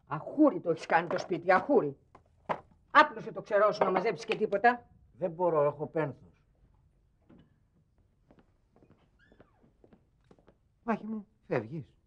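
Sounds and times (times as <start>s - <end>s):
faint squeak: 8.8s - 9.7s.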